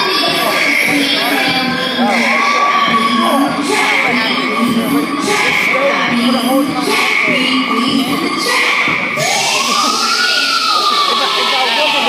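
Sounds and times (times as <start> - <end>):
hip hop dance music: 0.0 - 12.0
siren-like tone: 9.2 - 12.0.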